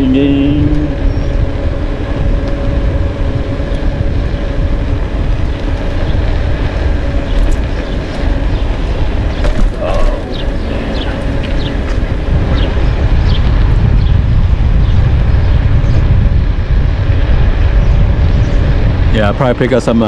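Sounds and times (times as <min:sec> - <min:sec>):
road noise: 0:00.0 - 0:20.0
wind buffeting microphone: 0:00.0 - 0:20.0.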